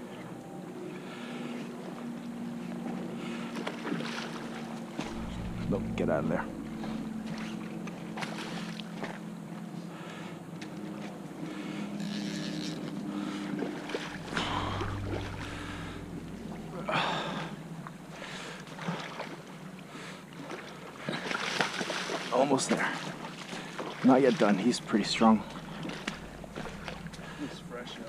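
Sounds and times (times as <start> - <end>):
creek water flowing: 13.0 - 28.0.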